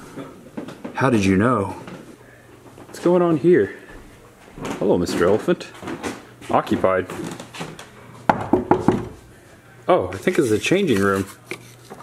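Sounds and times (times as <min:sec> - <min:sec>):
knocks on wooden door: 0:08.3 - 0:09.2.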